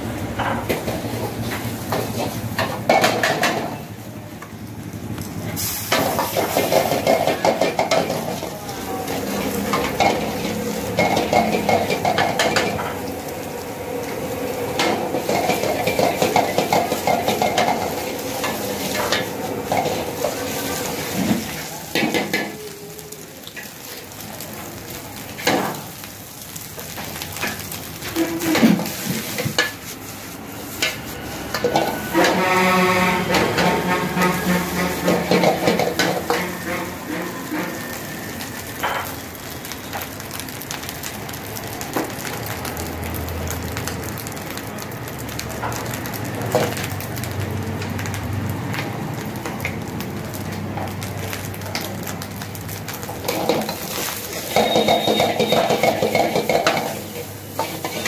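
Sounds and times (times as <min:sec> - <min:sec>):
food sizzling in a wok: 0:00.0 - 0:58.0
ladle scraping wok: 0:27.4 - 0:39.2, 0:53.2 - 0:58.0
ladle clanking on wok: 0:30.7 - 0:38.0, 0:53.2 - 0:58.0.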